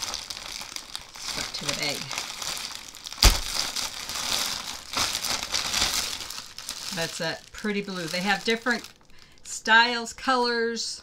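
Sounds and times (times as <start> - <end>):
plastic packaging crinkling: 0.0 - 9.6.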